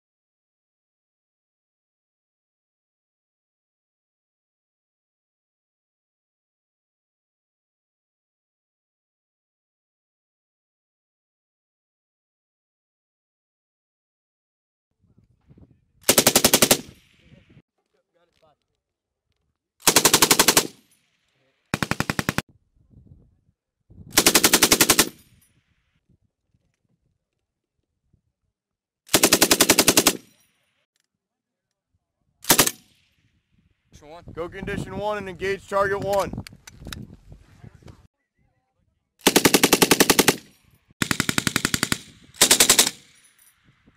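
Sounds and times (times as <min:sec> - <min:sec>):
machine gun bursts: 0:16.1 - 0:17.0, 0:19.8 - 0:20.8, 0:21.8 - 0:22.4, 0:24.2 - 0:25.2, 0:29.1 - 0:30.4, 0:32.5 - 0:32.8, 0:39.2 - 0:43.3.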